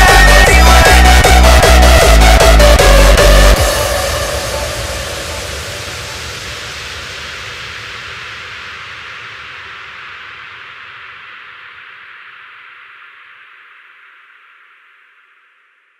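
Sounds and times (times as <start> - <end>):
synthesized white-noise wash: 0.0 - 15.4.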